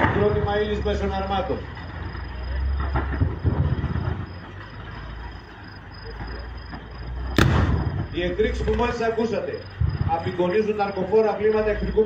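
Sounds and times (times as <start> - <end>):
loud sharp explosion: 0.0 - 1.3, 2.7 - 4.5, 6.2 - 8.8, 9.7 - 10.4
faint thuds: 2.6 - 4.5, 9.7 - 10.4.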